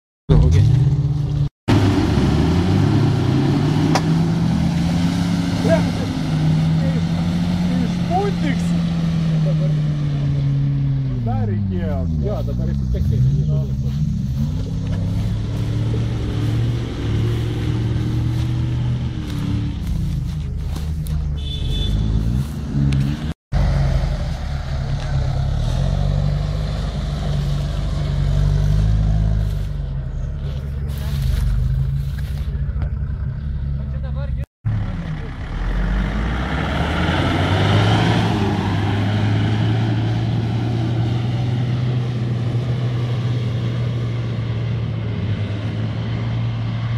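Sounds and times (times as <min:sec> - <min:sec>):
engines revving in mud: 0:00.3 - 0:46.9.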